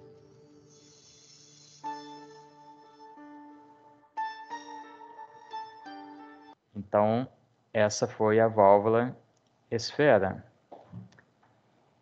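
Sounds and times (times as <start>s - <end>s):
soft background music: 0.0s - 6.6s.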